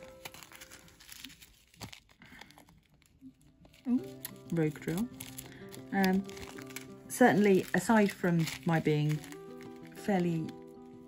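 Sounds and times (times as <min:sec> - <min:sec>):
plastic bags crinkling: 0:00.0 - 0:11.0.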